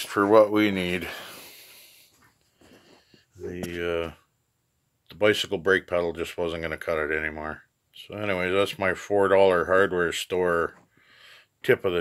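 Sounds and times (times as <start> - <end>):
man breathing out: 1.0 - 3.0.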